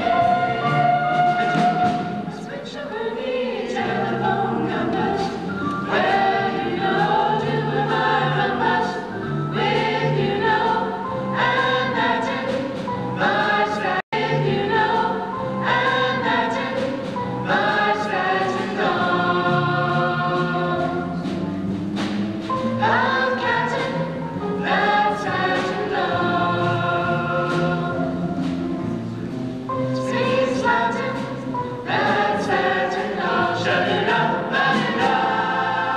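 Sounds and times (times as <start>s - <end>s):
vocal group singing in harmony: 0.0s - 21.4s, 22.5s - 29.0s, 29.8s - 35.9s.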